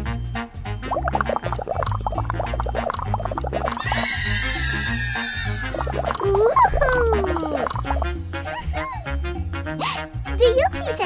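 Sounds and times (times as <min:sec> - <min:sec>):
upbeat background music: 0:00.0 - 0:11.0.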